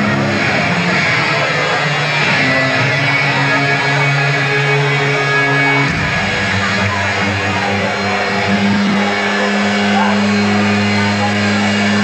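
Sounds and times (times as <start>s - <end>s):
amplifier drone: 0.0s - 12.0s
crowd noise: 0.0s - 12.0s.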